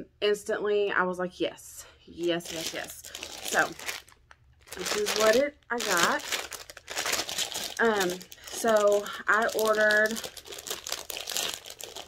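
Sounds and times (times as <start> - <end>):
packaging crinkling: 2.4 - 12.0.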